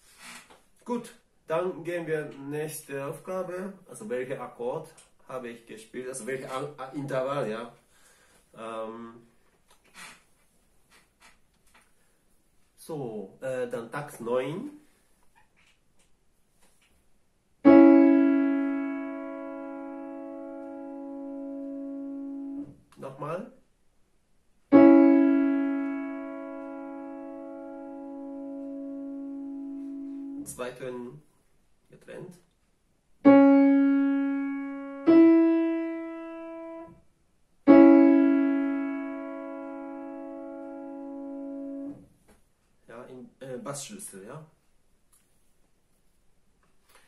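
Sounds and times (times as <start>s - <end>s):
digital piano chord: 17.6s - 22.7s, 24.7s - 30.6s, 33.2s - 37.0s, 37.7s - 42.0s.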